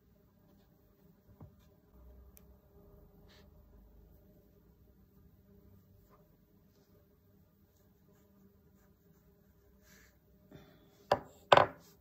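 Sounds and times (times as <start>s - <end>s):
sharp knocks on hard surface: 11.1s - 11.8s.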